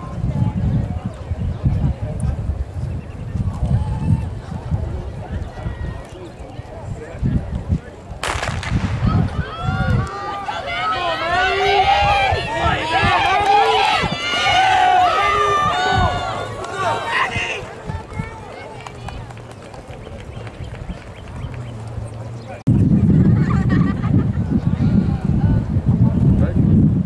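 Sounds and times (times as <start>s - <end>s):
spectators yelling and cheering: 3.4s - 6.4s, 8.2s - 22.6s
starting pistol crack: 8.2s - 9.5s.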